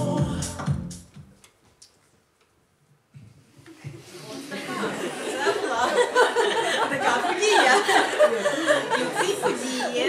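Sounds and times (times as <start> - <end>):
music: 0.0 - 1.4.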